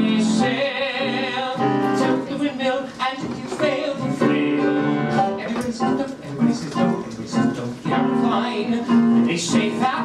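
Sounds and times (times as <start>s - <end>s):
man singing: 0.0s - 10.0s
piano accompaniment: 0.0s - 10.0s.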